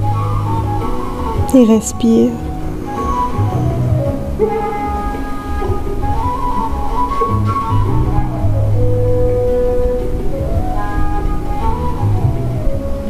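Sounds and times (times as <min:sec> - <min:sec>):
calm instrumental music: 0:00.0 - 0:13.0.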